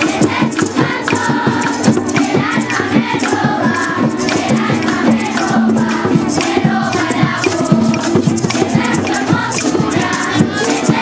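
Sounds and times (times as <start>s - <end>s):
children's choir singing: 0.0s - 11.0s
strummed small guitars: 0.0s - 11.0s.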